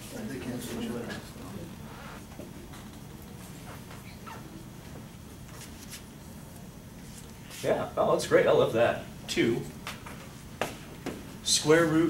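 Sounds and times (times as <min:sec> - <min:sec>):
low room hum: 0:00.0 - 0:12.0
marker squeaking on a whiteboard: 0:01.8 - 0:02.4, 0:03.6 - 0:04.6.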